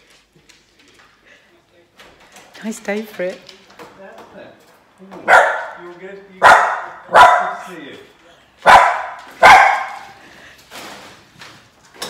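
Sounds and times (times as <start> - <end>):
dog barking: 5.2 - 5.8, 6.4 - 7.8, 8.6 - 10.2.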